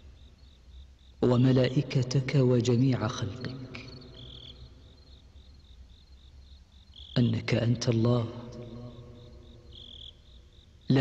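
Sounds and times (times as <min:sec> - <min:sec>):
faint cricket chirping: 0:00.0 - 0:11.0.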